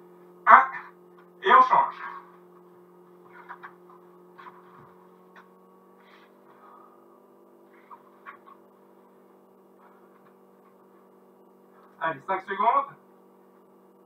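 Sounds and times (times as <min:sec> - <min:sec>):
faint electrical hum: 0:00.0 - 0:14.0.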